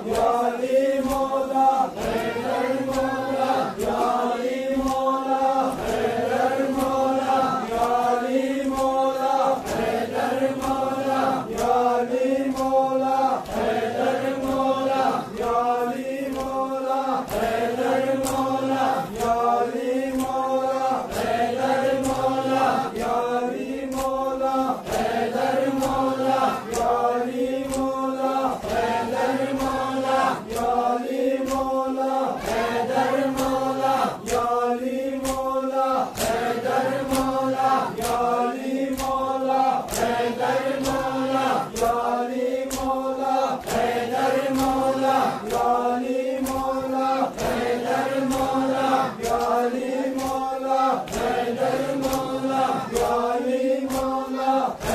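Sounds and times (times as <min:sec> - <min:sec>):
hands slapping bare chests: 0:00.0 - 0:54.9
men chanting in unison: 0:00.0 - 0:54.9.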